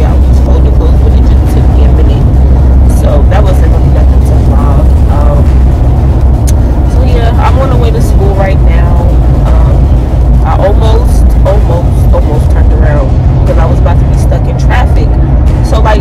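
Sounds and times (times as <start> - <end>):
woman talking: 0.0 - 5.7, 6.5 - 16.0
car interior drone: 0.0 - 16.0.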